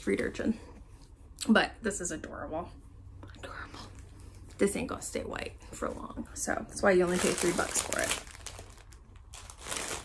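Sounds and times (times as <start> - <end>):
plastic packaging crinkling: 6.8 - 10.0.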